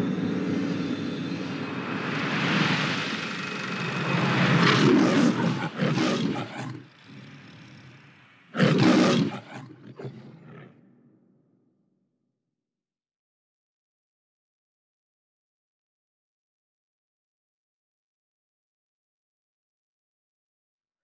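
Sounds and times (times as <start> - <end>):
lion roaring: 4.6 - 11.1.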